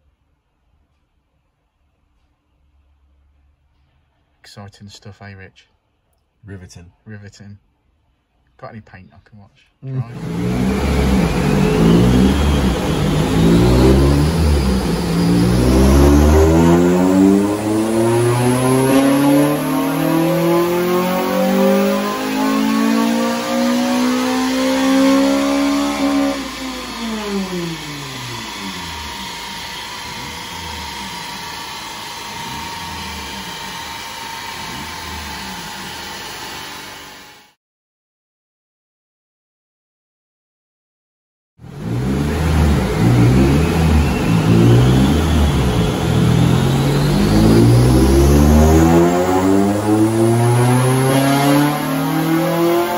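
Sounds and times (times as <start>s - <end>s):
car engine revving: 9.8s - 37.4s, 41.6s - 52.9s.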